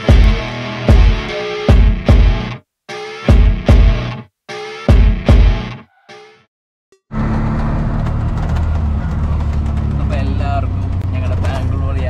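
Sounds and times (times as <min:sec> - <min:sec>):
auto-rickshaw engine drone: 0:07.1 - 0:12.0.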